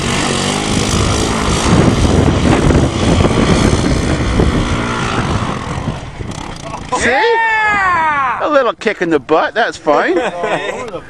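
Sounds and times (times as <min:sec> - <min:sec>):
small engine running hard: 0:00.0 - 0:07.1.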